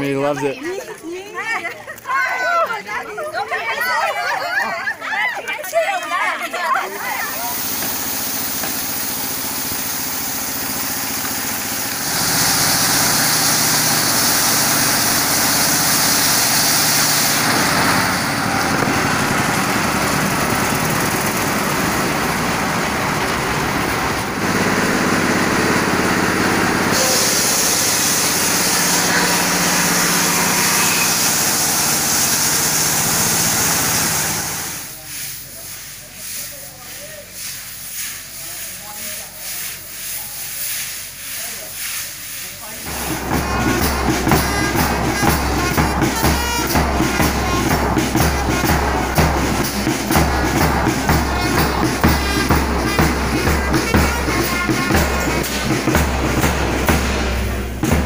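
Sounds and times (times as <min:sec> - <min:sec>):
sawmill machinery running: 0:06.9 - 0:58.0
saw cutting timber hiss: 0:07.0 - 0:57.9.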